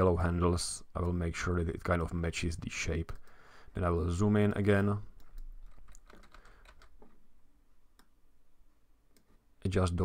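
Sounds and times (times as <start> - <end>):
keyboard and mouse clicks: 5.1 - 7.2.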